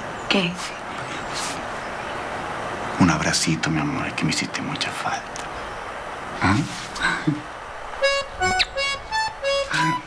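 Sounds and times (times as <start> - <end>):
accordion melody: 8.0 - 10.0.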